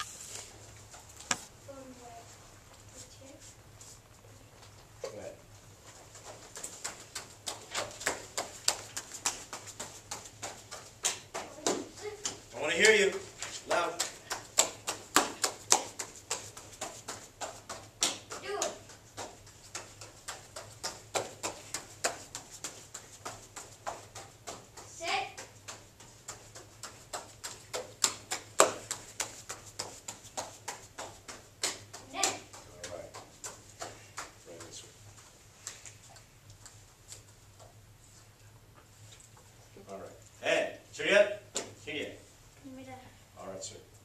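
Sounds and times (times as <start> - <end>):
bare feet slapping foam mats: 5.8 - 37.8.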